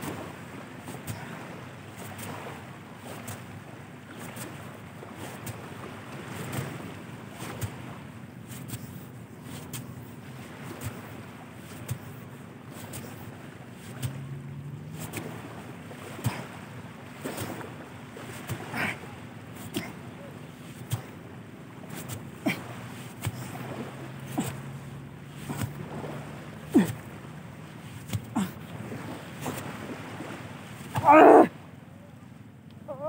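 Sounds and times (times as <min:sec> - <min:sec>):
man humming with effort: 0:24.2 - 0:25.8, 0:26.4 - 0:27.3, 0:28.1 - 0:28.8, 0:31.0 - 0:31.5, 0:32.8 - 0:33.0
man sharp straining breath: 0:26.7 - 0:27.1.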